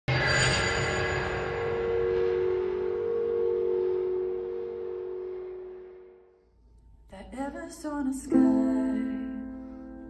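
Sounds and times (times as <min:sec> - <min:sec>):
ringing two-pitch tone: 0:00.2 - 0:06.4.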